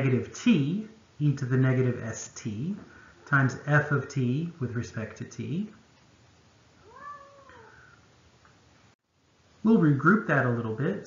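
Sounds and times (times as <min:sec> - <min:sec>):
cat meowing: 0:06.8 - 0:07.9.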